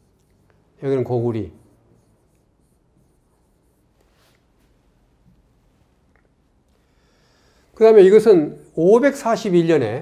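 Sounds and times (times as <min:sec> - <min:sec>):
pen stylus scratching on touchscreen: 0:00.0 - 0:04.5.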